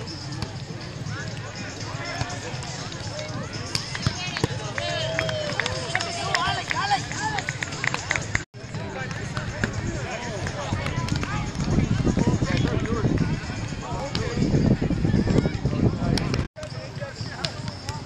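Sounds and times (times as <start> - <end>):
crowd chatter and calls: 0.0 - 18.0
ball slaps and knocks: 3.7 - 4.6.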